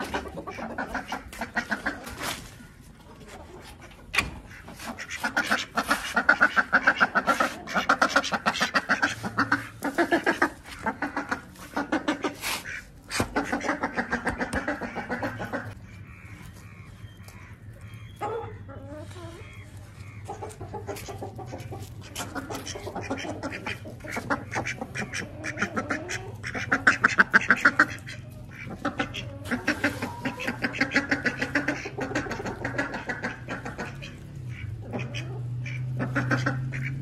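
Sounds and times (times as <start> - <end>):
hens clucking: 0.0 - 37.0.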